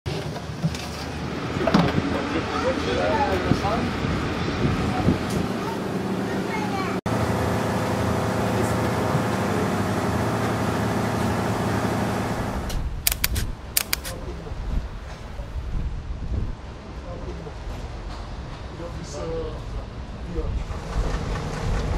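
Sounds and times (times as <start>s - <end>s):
sharp clicks: 13.0s - 14.2s.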